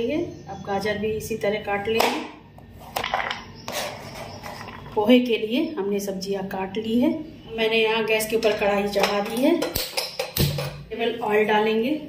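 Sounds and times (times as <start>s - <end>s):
woman's voice: 0.0s - 2.4s, 4.9s - 9.8s, 10.9s - 12.0s.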